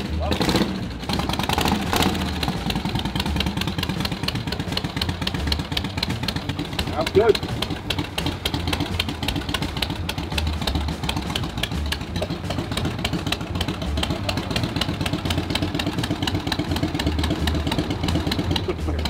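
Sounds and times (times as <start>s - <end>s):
motorcycle engine idling: 0.0s - 19.0s.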